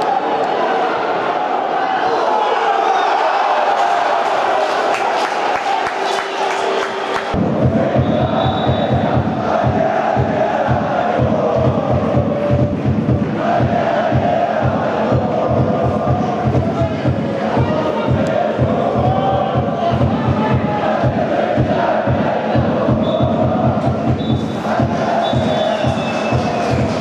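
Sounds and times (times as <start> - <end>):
football crowd chanting: 6.4 - 27.0
steady low beat: 7.4 - 27.0.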